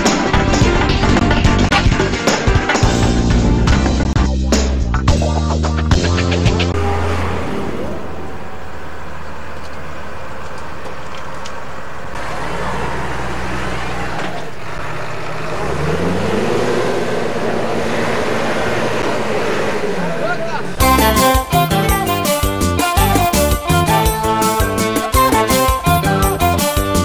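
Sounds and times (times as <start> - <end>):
tractor diesel engine revving: 6.6 - 27.0
news intro music: 20.8 - 26.6.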